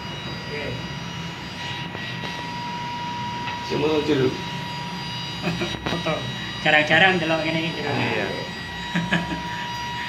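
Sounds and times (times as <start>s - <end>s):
level-crossing warning tone: 0.0s - 10.0s.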